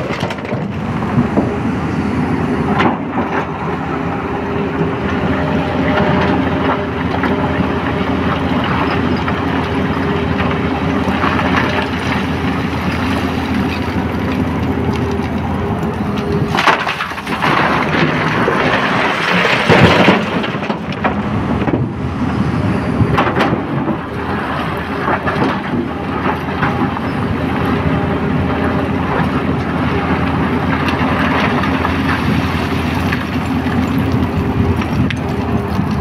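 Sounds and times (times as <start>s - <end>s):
diesel engine running: 0.0s - 36.0s
rock pouring into truck body: 16.5s - 20.9s.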